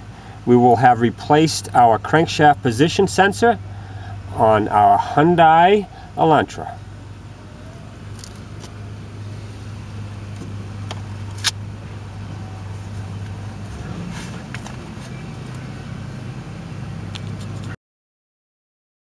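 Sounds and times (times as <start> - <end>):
engine humming: 0.0 - 17.8.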